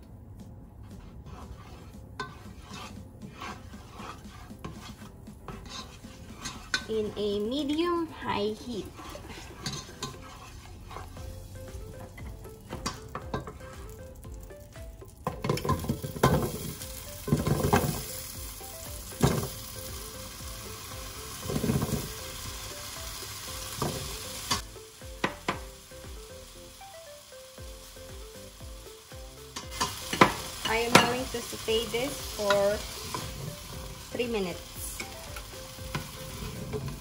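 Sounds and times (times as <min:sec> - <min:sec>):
oil sizzling in a pot: 0:01.0 - 0:37.0.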